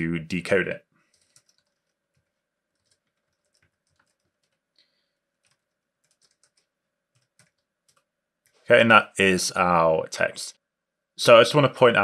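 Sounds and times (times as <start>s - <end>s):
keyboard typing: 1.1s - 8.1s.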